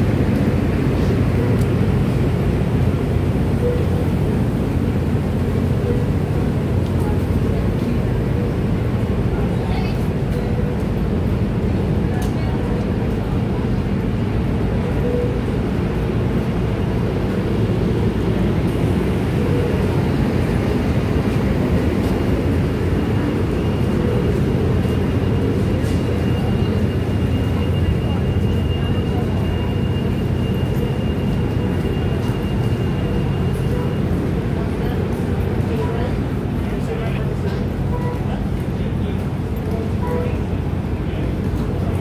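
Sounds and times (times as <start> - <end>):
people talking: 0.0 - 15.6, 18.1 - 42.0
train idling rumble: 0.0 - 42.0.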